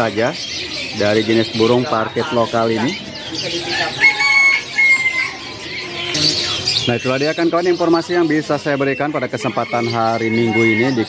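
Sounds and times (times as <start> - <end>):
birds chirping: 0.0 - 11.0
long drawn-out bird call: 2.9 - 7.7, 9.3 - 11.0.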